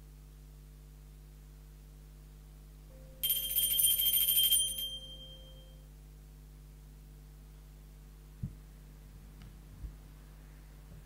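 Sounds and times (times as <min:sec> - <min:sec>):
altar bells jingling: 0:03.2 - 0:05.8.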